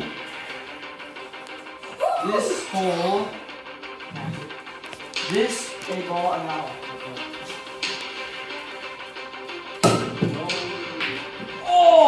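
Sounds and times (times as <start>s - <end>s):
background music: 0.0s - 12.0s
pool cue striking ball: 9.8s - 11.2s.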